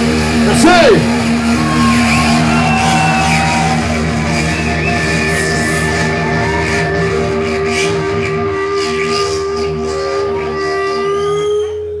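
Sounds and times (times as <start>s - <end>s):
amplified live band music: 0.0s - 12.0s.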